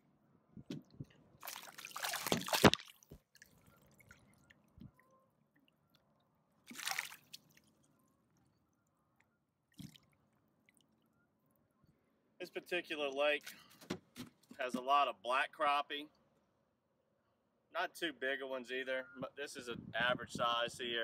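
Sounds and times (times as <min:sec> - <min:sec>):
fish splashing in water: 0:01.4 - 0:05.0, 0:06.7 - 0:07.9, 0:09.7 - 0:10.9.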